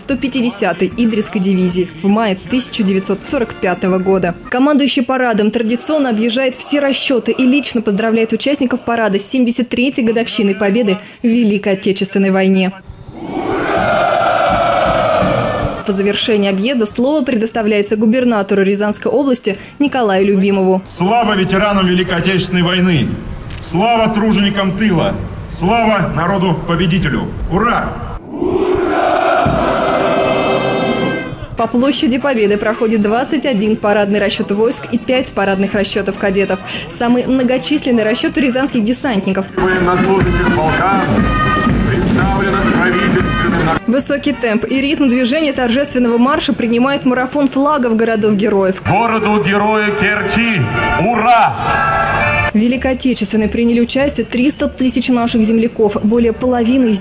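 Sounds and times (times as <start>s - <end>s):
troops shouting in unison: 13.2s - 15.8s, 28.2s - 31.3s
marching band music: 29.0s - 31.6s, 40.0s - 43.8s.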